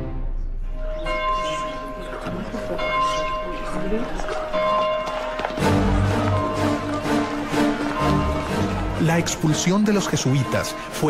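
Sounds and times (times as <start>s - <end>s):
church bell tolling: 0.6s - 11.0s.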